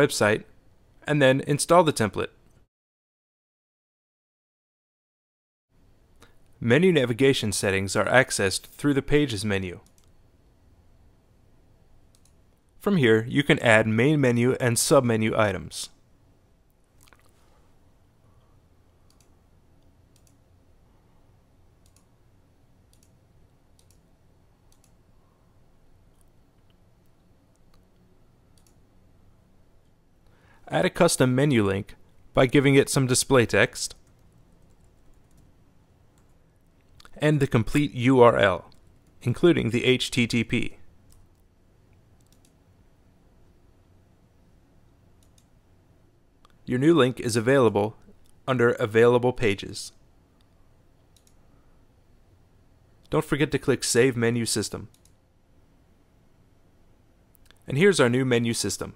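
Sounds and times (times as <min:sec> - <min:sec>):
low steady hum: 0:05.8 - 0:58.9
computer mouse clicks: 0:09.8 - 0:10.2, 0:12.1 - 0:12.7, 0:19.1 - 0:20.4, 0:21.8 - 0:22.1, 0:22.9 - 0:23.2, 0:23.8 - 0:24.0, 0:24.7 - 0:25.0, 0:26.1 - 0:28.8, 0:34.0 - 0:35.5, 0:41.1 - 0:41.5, 0:42.2 - 0:42.6, 0:45.2 - 0:45.5, 0:50.4 - 0:51.4, 0:54.9 - 0:55.2.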